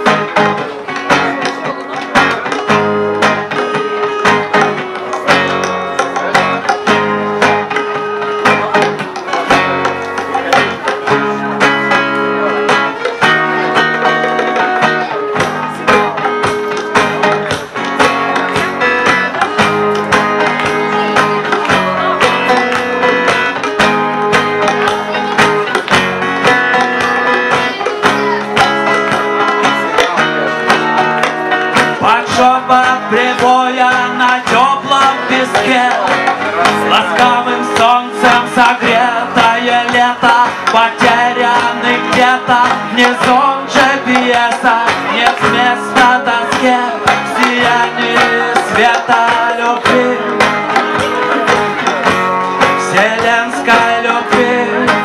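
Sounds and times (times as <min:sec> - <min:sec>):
acoustic guitars strumming: 0:00.0 - 0:55.0
percussion keeping the beat: 0:00.0 - 0:55.0.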